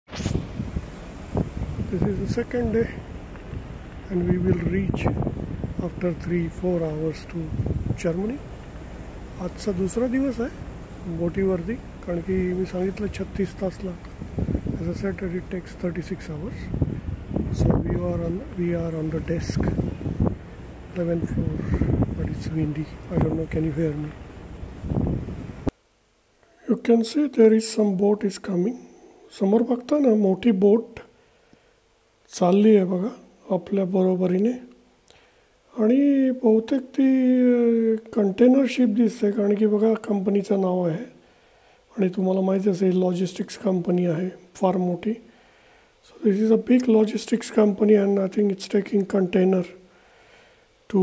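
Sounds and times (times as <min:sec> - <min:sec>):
short rustle: 0:00.1 - 0:00.9
wind buffeting microphone: 0:00.1 - 0:25.7.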